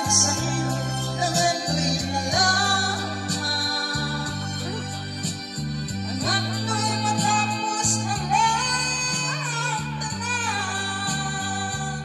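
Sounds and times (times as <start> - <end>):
backing track music: 0.0 - 12.0
woman singing karaoke: 0.0 - 12.0.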